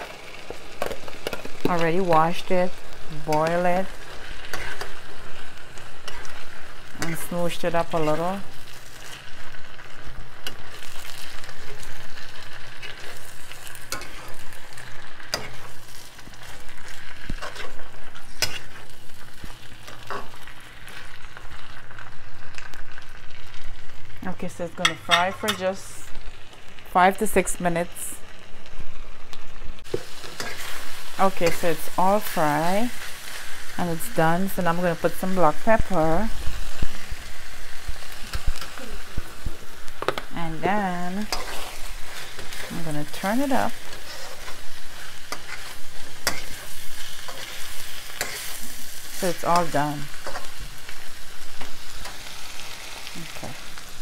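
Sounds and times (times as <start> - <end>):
food sizzling in oil: 0.0 - 54.0
utensil scraping pan: 4.4 - 5.0, 17.3 - 18.9, 41.2 - 50.6.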